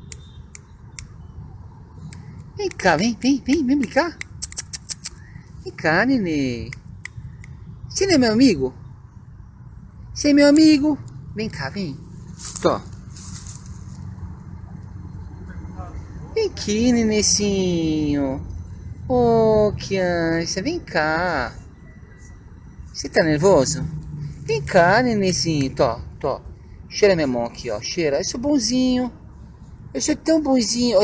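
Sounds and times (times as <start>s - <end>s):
short sharp clicks: 0.0s - 1.2s, 4.2s - 5.2s.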